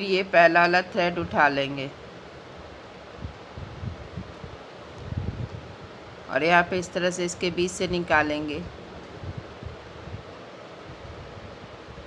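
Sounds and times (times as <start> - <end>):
steady faint hiss: 0.0 - 12.0.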